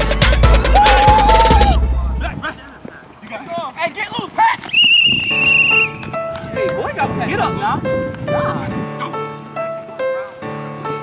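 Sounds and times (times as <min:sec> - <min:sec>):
background music: 0:00.0 - 0:02.4, 0:05.5 - 0:11.0
voices: 0:02.0 - 0:04.9
referee's whistle blast: 0:04.7 - 0:06.0.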